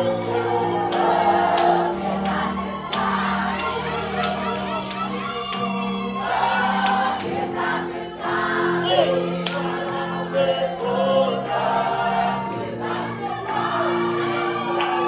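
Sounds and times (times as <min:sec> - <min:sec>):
congregation singing gospel song: 0:00.0 - 0:15.0.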